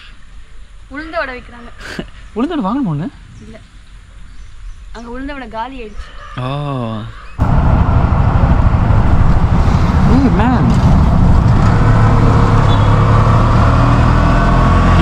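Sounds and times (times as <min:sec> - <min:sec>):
auto-rickshaw engine droning: 0:07.4 - 0:15.0
road noise: 0:07.4 - 0:15.0.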